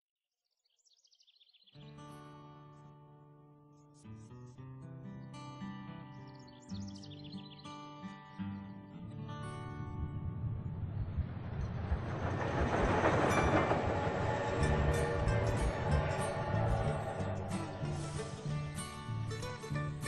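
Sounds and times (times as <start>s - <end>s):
acoustic guitar music: 1.8s - 10.6s, 13.3s - 20.0s
moving train noise: 9.6s - 20.0s.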